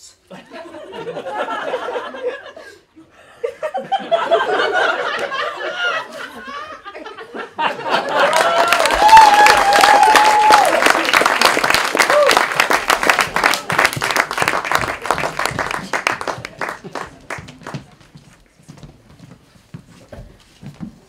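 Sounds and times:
audience applauding and cheering: 7.8s - 17.8s
person whooping: 8.3s - 11.0s, 12.0s - 12.6s.

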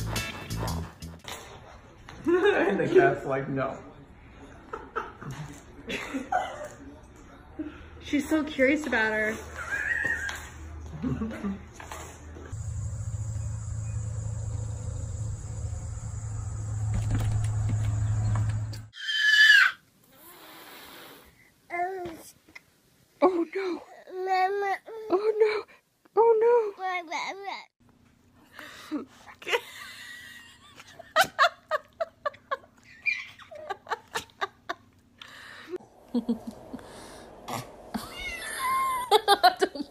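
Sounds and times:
toddler squealing: 9.6s - 10.5s, 19.0s - 19.8s
cat meowing: 38.0s - 38.9s.

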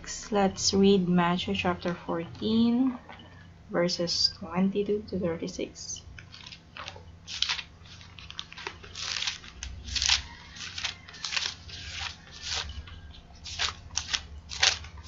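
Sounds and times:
faint steady hum: 0.0s - 15.0s
paper pages rustling: 6.2s - 15.0s.

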